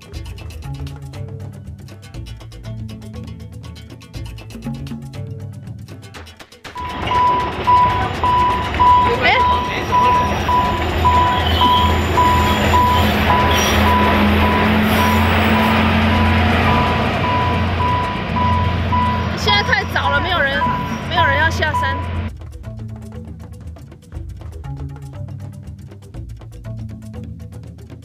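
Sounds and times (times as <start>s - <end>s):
level crossing signal beeping: 6.8s - 22.3s
train rumbling past: 6.8s - 22.3s.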